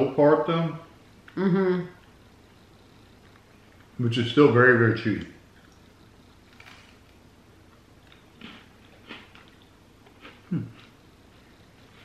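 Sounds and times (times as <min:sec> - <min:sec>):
chewing cookie: 0:05.2 - 0:12.0.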